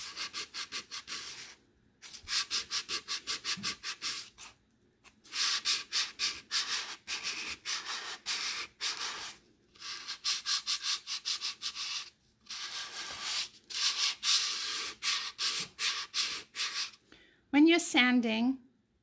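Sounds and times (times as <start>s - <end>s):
sandpaper rubbing on wood: 5.3s - 17.0s.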